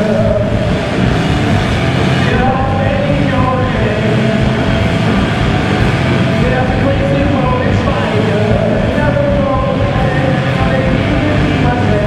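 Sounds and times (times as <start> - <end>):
distorted electric guitar: 0.0 - 12.0
drums: 0.0 - 12.0.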